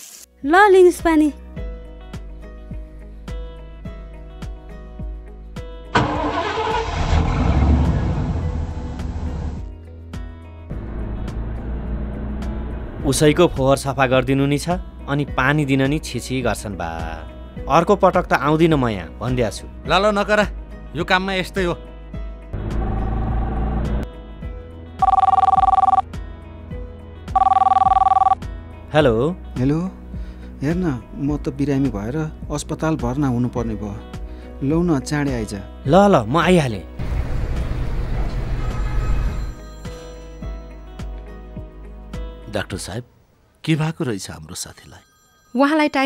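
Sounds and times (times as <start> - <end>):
background music: 0.1 - 46.0
truck engine rumbling: 6.0 - 9.6, 10.7 - 13.1
telephone ringing: 25.0 - 26.0, 27.3 - 28.4.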